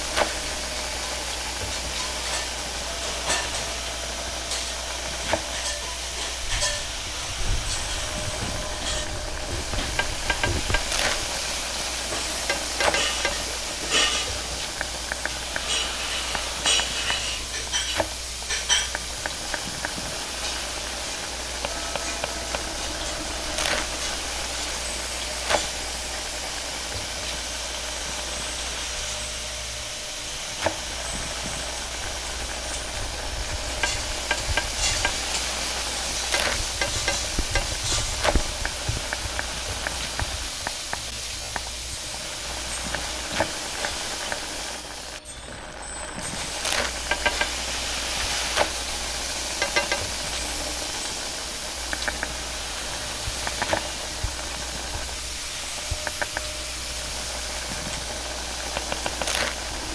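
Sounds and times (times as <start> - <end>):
food sizzling: 0.0 - 59.9
gas burner hissing: 0.0 - 59.9.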